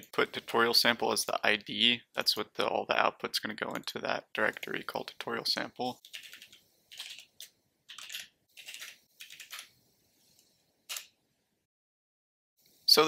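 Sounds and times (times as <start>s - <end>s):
typing on computer keyboard: 6.0s - 9.7s.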